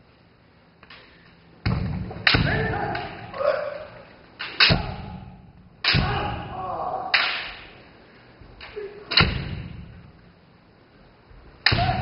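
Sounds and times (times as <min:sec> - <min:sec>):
bamboo sword strikes: 0:01.6 - 0:03.6, 0:04.4 - 0:07.8, 0:08.7 - 0:09.9, 0:11.6 - 0:12.0
people shouting: 0:02.3 - 0:05.2, 0:05.8 - 0:07.2, 0:11.6 - 0:12.0.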